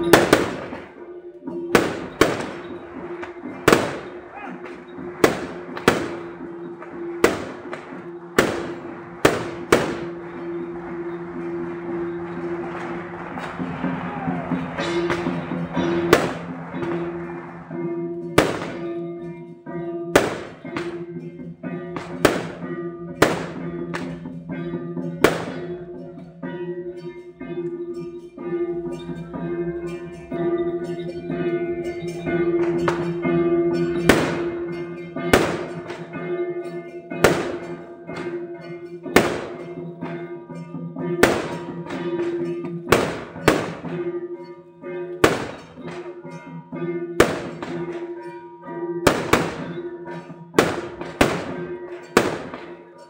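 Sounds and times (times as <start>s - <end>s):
procession music: 0.0s - 19.6s
firecrackers banging: 0.0s - 53.0s.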